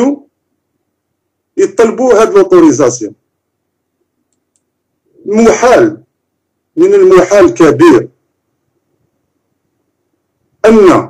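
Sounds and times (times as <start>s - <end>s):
man speaking: 0.0s - 0.3s, 1.6s - 3.2s, 5.2s - 6.1s, 6.8s - 8.2s, 10.6s - 11.0s
faint low hum: 0.0s - 11.0s
faint short clicks: 4.3s - 4.7s.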